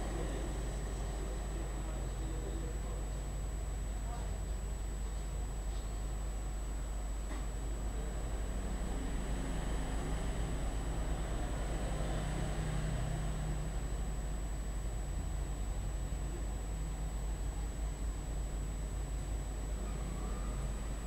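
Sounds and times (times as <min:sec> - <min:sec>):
low urban rumble: 0:00.0 - 0:21.0
faint high-pitched whine: 0:12.9 - 0:21.0.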